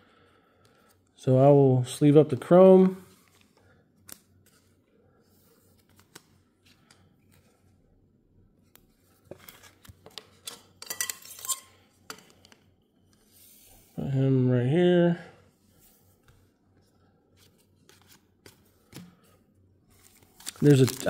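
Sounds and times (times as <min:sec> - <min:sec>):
plastic sleeve crinkling: 0:20.0 - 0:21.0.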